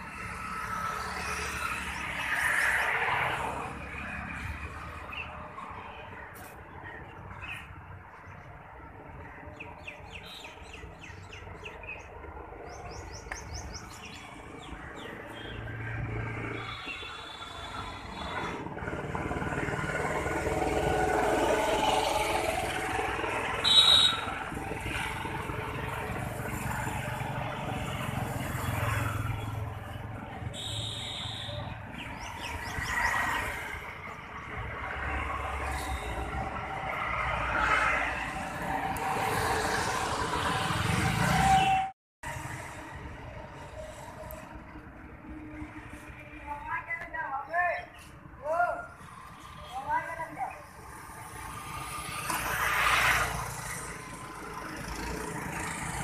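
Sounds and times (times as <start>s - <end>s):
road vehicles passing: 0.0s - 56.0s
birds chirping: 4.9s - 17.3s, 28.4s - 34.5s.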